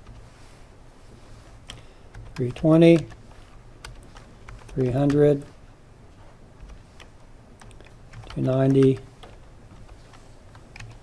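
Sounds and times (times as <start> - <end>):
computer keyboard keystrokes: 1.7 - 3.2, 3.8 - 5.4, 6.6 - 11.0.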